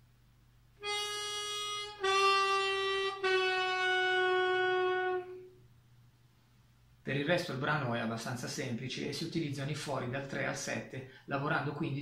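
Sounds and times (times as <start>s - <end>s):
harmonica bending held notes: 0.8s - 5.6s.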